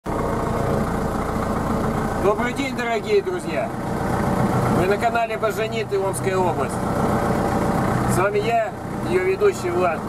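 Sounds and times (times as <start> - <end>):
tractor engine running: 0.0 - 10.0.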